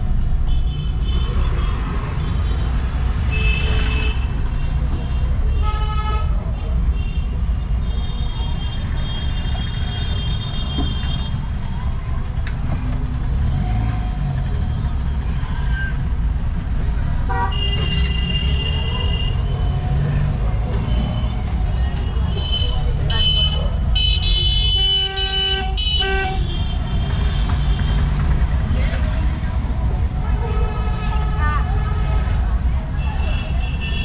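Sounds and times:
vehicle engine and road rumble: 0:00.0 - 0:34.0
long car horn: 0:17.3 - 0:19.4, 0:23.2 - 0:26.8.

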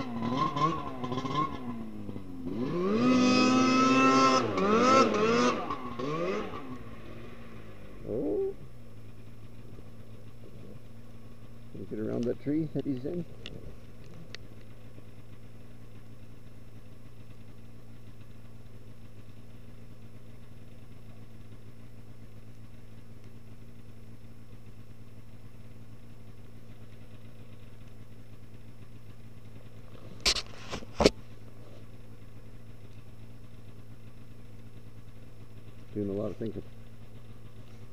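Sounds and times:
snowmobile engine idling: 0:00.0 - 0:37.9.

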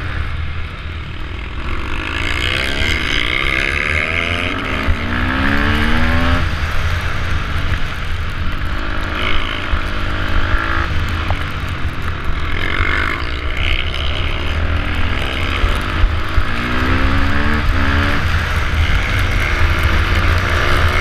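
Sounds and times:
motorcycle engine accelerating: 0:00.0 - 0:21.0
wind buffeting camera: 0:02.0 - 0:21.0.

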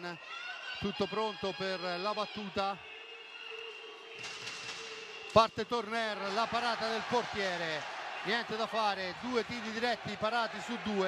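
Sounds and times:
indoor arena crowd murmur: 0:00.0 - 0:11.0.

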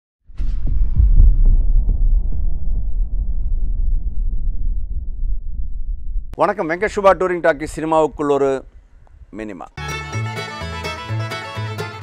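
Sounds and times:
deep pulsing rumble: 0:00.2 - 0:06.4.

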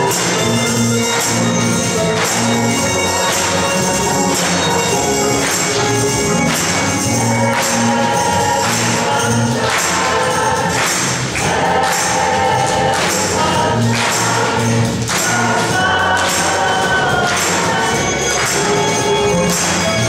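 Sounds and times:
congregation singing: 0:00.0 - 0:20.0
handbell choir playing: 0:00.0 - 0:20.0
people clapping: 0:00.0 - 0:20.0.

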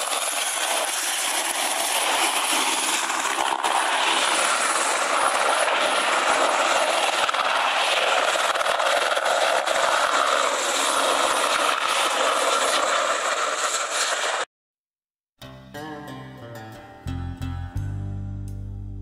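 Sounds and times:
model helicopter rotor and engine: 0:00.0 - 0:14.5.

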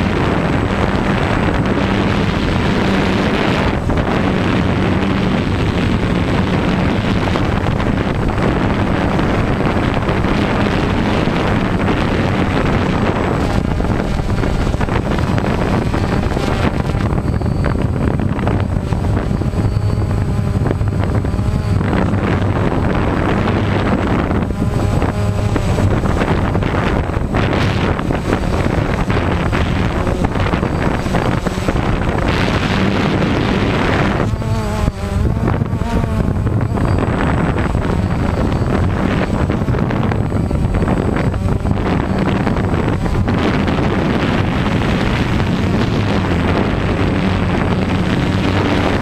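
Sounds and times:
drone propellers buzzing: 0:00.0 - 0:49.0
wind on microphone: 0:00.0 - 0:49.0.

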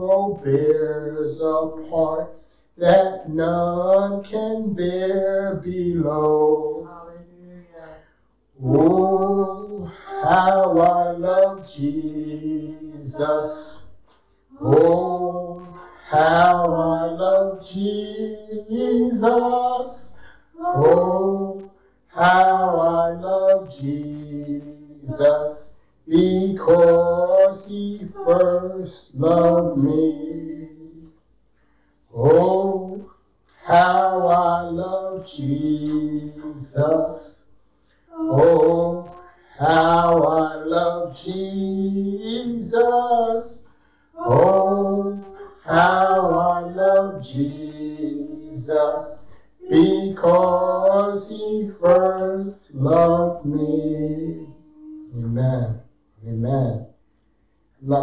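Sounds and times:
man singing a hymn: 0:00.0 - 0:31.2, 0:32.0 - 0:57.0, 0:57.8 - 0:58.0.

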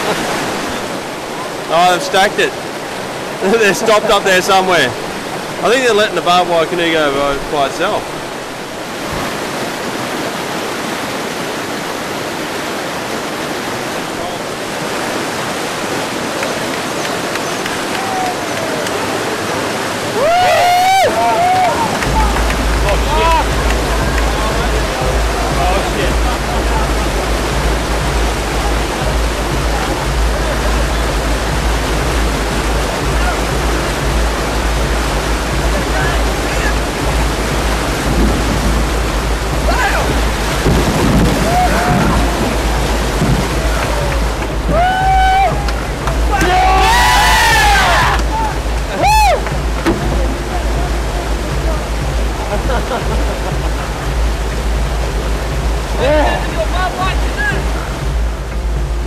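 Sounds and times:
whitewater rushing: 0:00.0 - 0:59.0
deep low rumble: 0:22.0 - 0:46.8.

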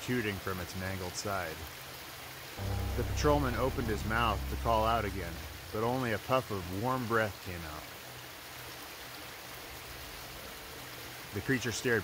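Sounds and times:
faint low hum: 0:02.6 - 0:06.6.

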